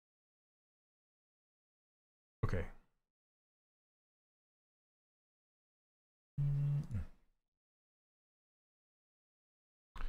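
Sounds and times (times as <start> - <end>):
man humming: 6.4 - 7.2.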